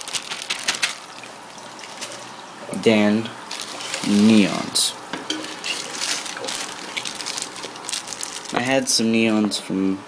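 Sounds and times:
water splashing into aquarium: 0.0 - 4.4.

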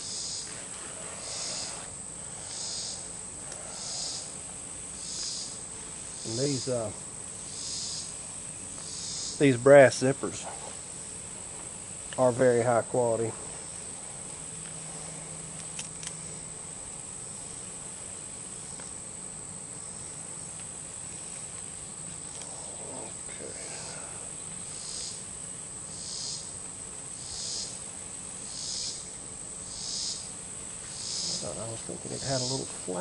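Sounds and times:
insects buzzing: 0.0 - 33.0
rhythmic insect pulsing: 0.0 - 33.0.

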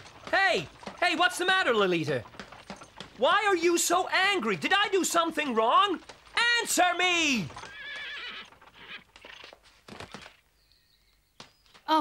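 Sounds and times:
hoof clops: 0.0 - 11.9
horse whinnying: 6.4 - 10.4.

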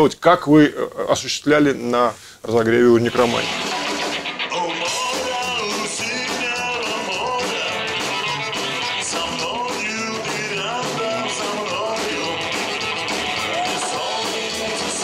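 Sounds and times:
rock and roll band playing: 3.1 - 15.0
man singing: 4.4 - 15.0.

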